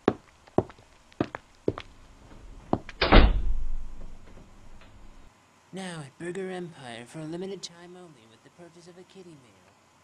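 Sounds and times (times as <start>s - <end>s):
front door slamming: 2.7s - 5.2s
door latch click: 2.9s - 5.0s.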